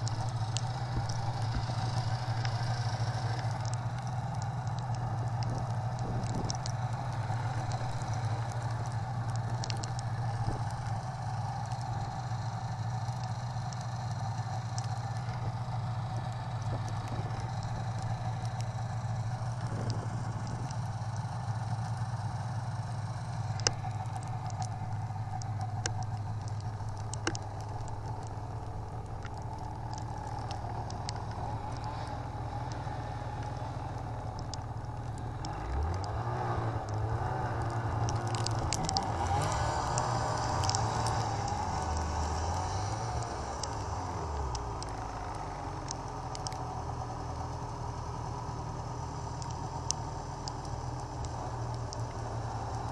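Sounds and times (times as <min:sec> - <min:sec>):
snowmobile engine running: 0:00.0 - 0:52.9
track and snow noise: 0:00.0 - 0:52.9
sharp clicks: 0:23.2 - 0:48.2, 0:49.2 - 0:52.9.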